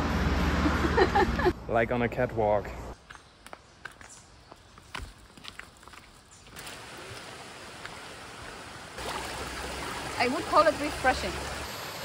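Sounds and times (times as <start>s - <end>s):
footsteps on dirt trail: 3.0s - 6.6s
stream running over rock: 5.4s - 12.0s.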